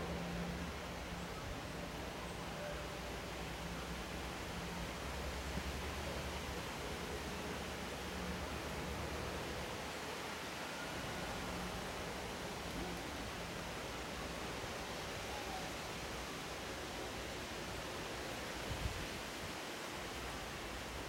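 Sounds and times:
outdoor background noise: 0:00.0 - 0:21.0.

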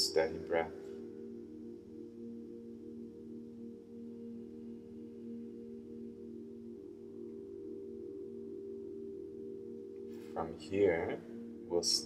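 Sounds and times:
ambient drone music: 0:00.0 - 0:12.0.

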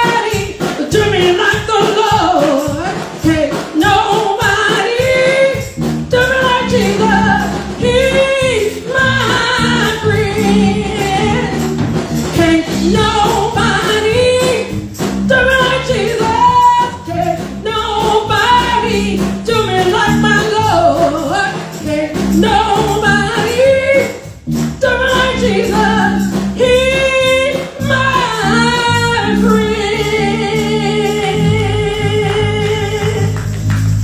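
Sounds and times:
woman singing gospel: 0:00.0 - 0:33.6
church band playing: 0:00.0 - 0:34.0.

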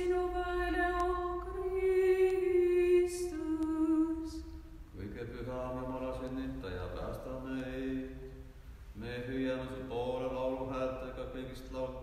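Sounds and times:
voices chanting a hymn: 0:00.0 - 0:12.0.

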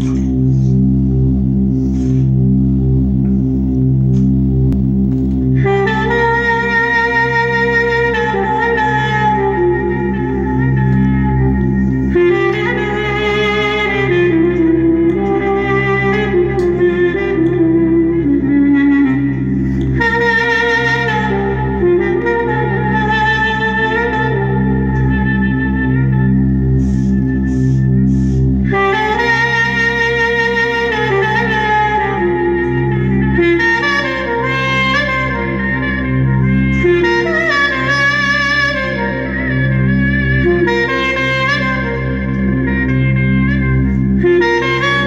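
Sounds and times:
clarinet improvisation: 0:00.0 - 0:02.5, 0:03.2 - 0:45.0
sustained backing drone: 0:00.0 - 0:45.0.

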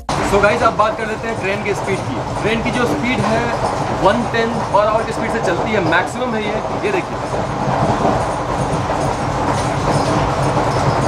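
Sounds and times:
train wheels running on track: 0:00.0 - 0:11.0.

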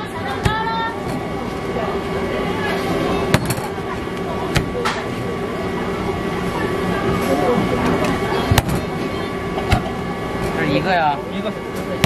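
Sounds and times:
kitchen background noise: 0:00.0 - 0:12.0.

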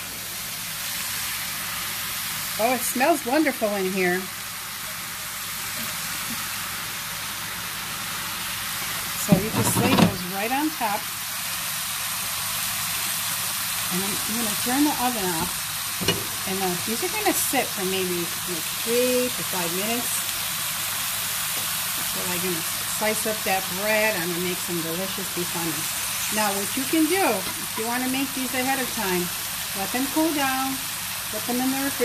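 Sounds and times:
meat sizzling in a pan: 0:00.0 - 0:32.0.

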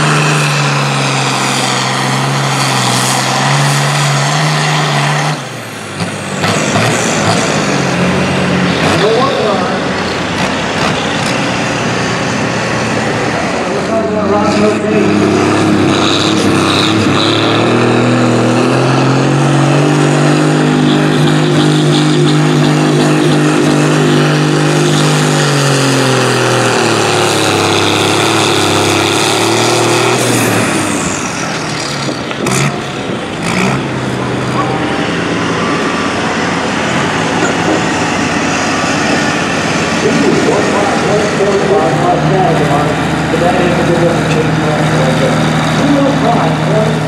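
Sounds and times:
tractor diesel engine under load: 0:00.0 - 0:47.0.

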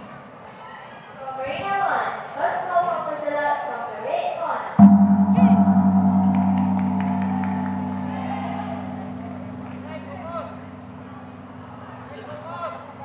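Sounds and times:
gong ringing: 0:04.8 - 0:12.6.

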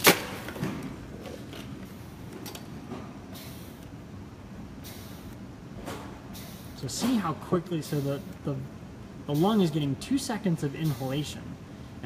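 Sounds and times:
air hissing: 0:03.2 - 0:03.9, 0:04.7 - 0:05.5, 0:06.1 - 0:09.9, 0:10.7 - 0:11.4
ventilator cycling rapid breaths: 0:03.2 - 0:04.0, 0:04.7 - 0:05.5, 0:06.2 - 0:06.9, 0:07.7 - 0:08.5.

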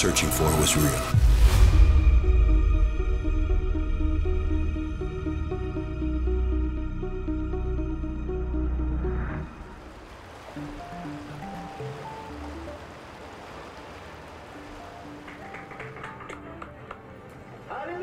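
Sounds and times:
soft background music: 0:00.0 - 0:18.0
river water rushing: 0:09.6 - 0:17.8.

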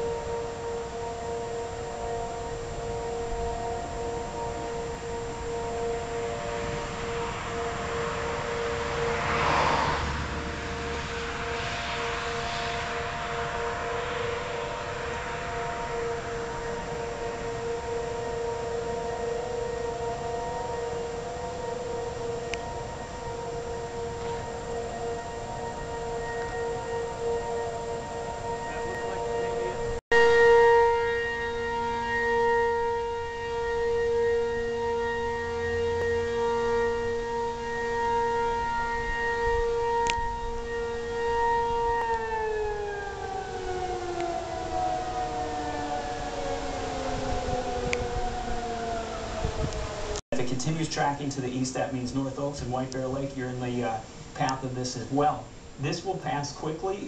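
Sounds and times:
warning siren steady tone: 0:00.0 - 0:57.0.

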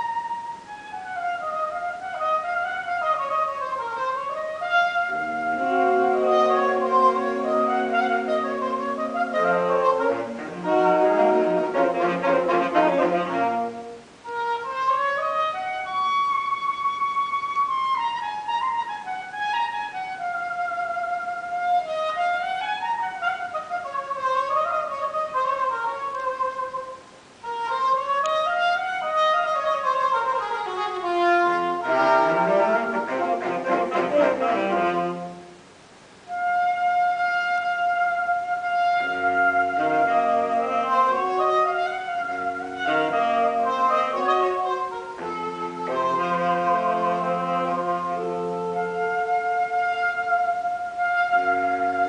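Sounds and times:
saxophone quartet playing: 0:00.0 - 0:52.0.

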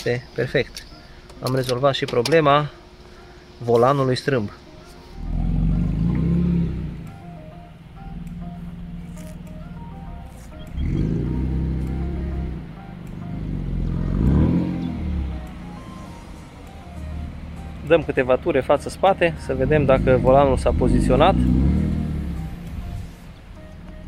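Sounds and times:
background music with melody: 0:00.0 - 0:24.0
car engine running: 0:00.0 - 0:24.0.

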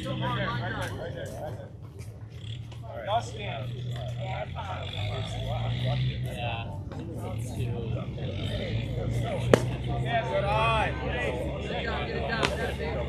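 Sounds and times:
voices chattering and calling: 0:00.0 - 0:13.0.

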